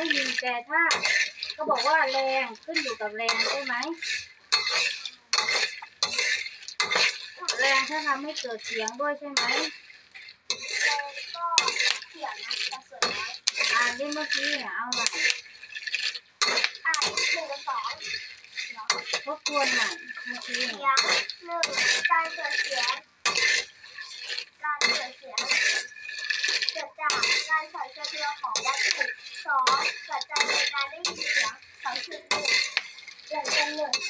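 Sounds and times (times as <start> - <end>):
metal spoon scraping a pan: 0.0 - 34.0
seeds clattering in a pan: 0.0 - 34.0.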